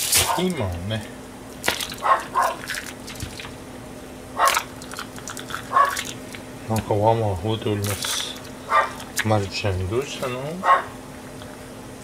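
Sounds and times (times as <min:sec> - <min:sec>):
faint steady hum: 0:00.0 - 0:12.0
dog barking: 0:00.2 - 0:00.6, 0:02.0 - 0:02.6, 0:04.4 - 0:04.7, 0:05.7 - 0:06.0, 0:08.7 - 0:09.0, 0:10.6 - 0:11.0.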